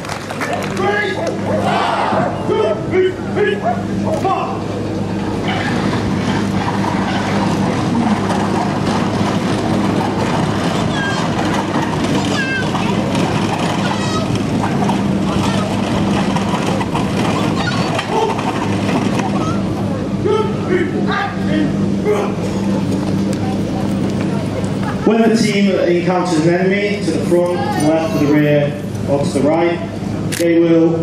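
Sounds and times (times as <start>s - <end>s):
wooden wheels rumbling over concrete: 5.5s - 19.9s.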